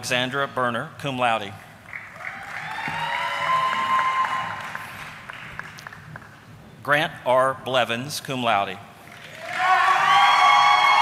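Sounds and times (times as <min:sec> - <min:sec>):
audience applauding: 0:01.9 - 0:06.5, 0:09.1 - 0:11.0
shouted cheer: 0:02.2 - 0:04.9, 0:09.3 - 0:11.0.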